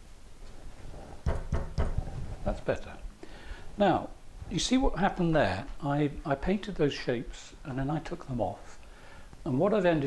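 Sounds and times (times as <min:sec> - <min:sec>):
paintbrush knocking on wooden easel: 0:01.2 - 0:02.2.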